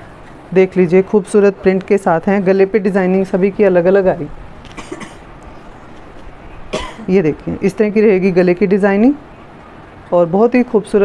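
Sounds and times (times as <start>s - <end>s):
low room noise: 0.0s - 11.0s
woman coughing: 4.8s - 5.3s, 6.7s - 7.1s.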